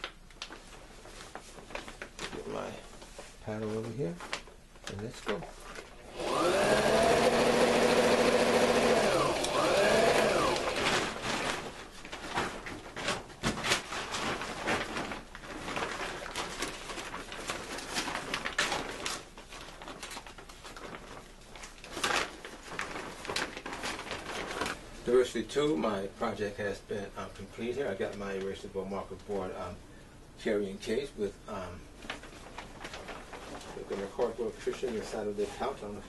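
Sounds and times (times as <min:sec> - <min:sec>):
clicks and rustles of handling: 0:00.0 - 0:06.0, 0:10.6 - 0:24.8, 0:31.9 - 0:36.0
electric sewing machine running: 0:06.1 - 0:11.1.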